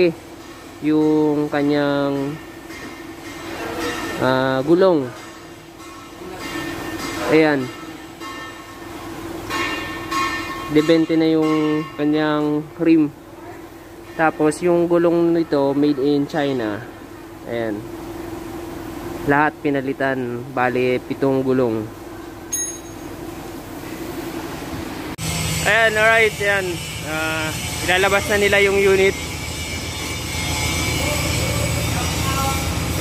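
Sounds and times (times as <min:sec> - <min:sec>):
low background hum: 0:00.0 - 0:33.0
high metallic ping: 0:05.1 - 0:12.6, 0:22.4 - 0:23.2
bell-like ringing tones: 0:22.5 - 0:23.2.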